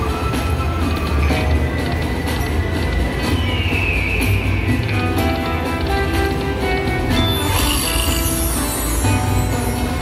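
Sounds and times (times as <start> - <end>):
slot machine bonus music: 0.0 - 10.0.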